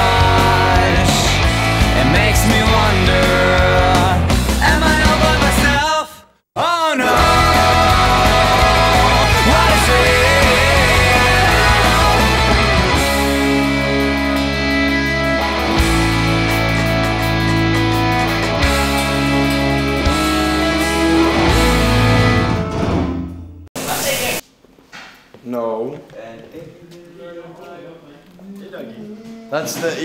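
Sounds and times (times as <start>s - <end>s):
rock music: 0.0s - 5.9s, 7.0s - 24.1s.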